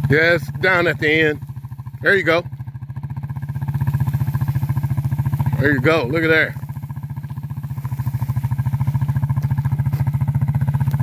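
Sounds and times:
atv engine putter: 0.0 - 11.0.

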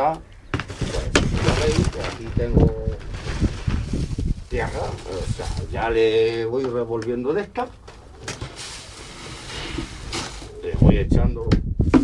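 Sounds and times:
soil pouring hiss: 8.4 - 10.6.

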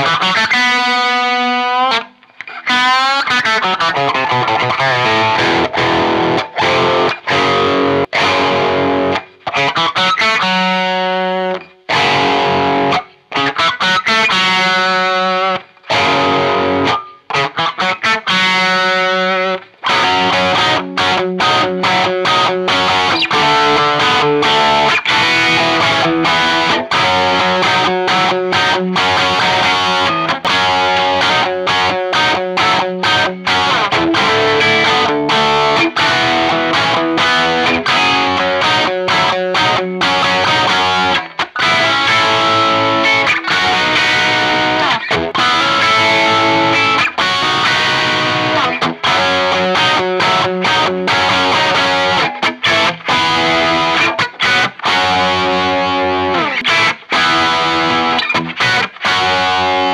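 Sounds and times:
electric guitar phrases: 0.0 - 59.9.

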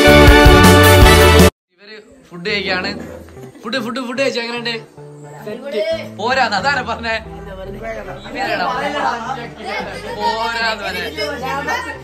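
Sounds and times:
boys chattering: 1.9 - 12.0
boys laughing: 8.6 - 12.0.

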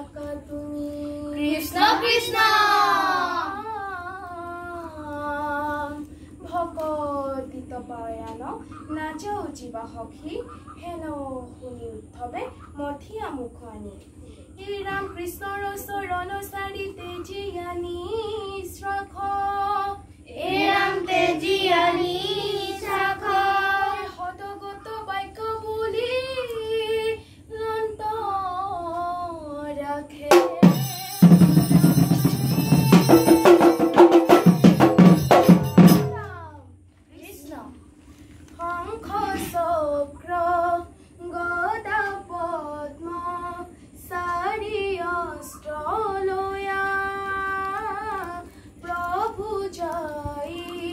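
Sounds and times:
children singing a devotional chant: 0.0 - 6.0, 14.8 - 30.9, 38.6 - 50.9
children chanting in unison: 1.7 - 3.8, 20.4 - 24.1.

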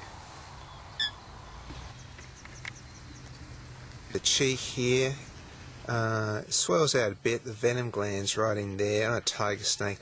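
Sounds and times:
bird chirp: 0.6 - 3.7.

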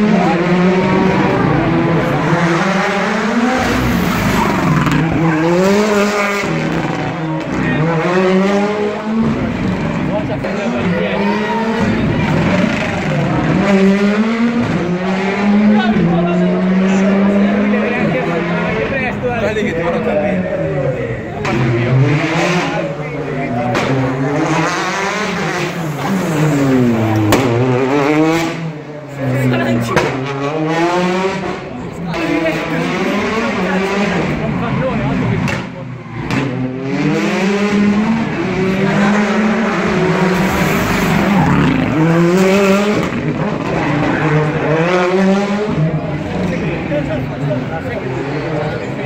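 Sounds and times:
rally car engine revving: 0.0 - 49.0.

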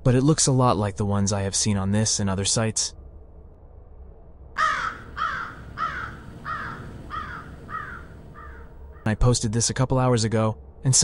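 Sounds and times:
faint low background noise: 0.0 - 11.0
crow cawing: 4.6 - 9.1.

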